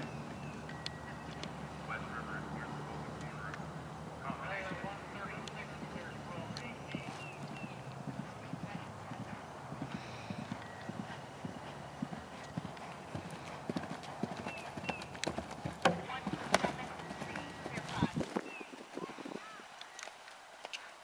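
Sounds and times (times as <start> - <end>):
horse galloping on grass: 0.0 - 20.9.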